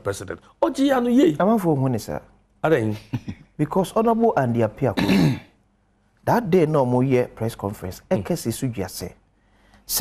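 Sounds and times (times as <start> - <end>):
man clearing his throat: 5.0 - 5.6.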